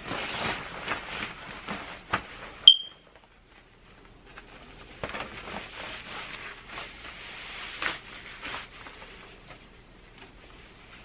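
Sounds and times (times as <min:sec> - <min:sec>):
clothing rustling: 0:00.0 - 0:11.0.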